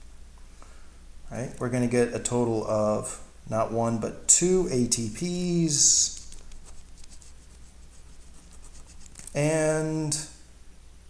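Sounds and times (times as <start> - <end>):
faint low hum: 0.0 - 11.0
pen scratching on paper: 6.4 - 9.4.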